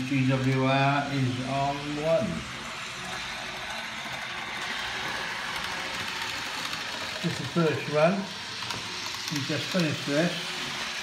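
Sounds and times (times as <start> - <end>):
model train rattling on track: 0.0 - 11.0.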